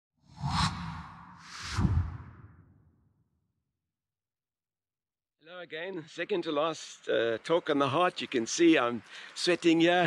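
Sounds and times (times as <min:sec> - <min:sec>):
whooshes: 0:00.3 - 0:03.1
low rumble: 0:00.4 - 0:02.9.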